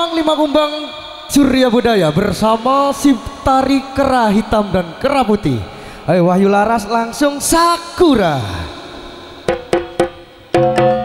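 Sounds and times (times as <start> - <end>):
sharp percussion hits: 8.8 - 11.0
tune of struck pitched notes: 9.5 - 11.0.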